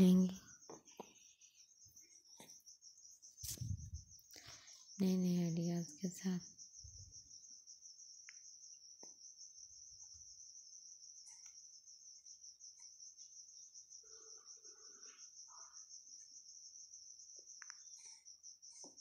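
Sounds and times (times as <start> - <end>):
high-pitched insect trill: 0.0 - 19.0.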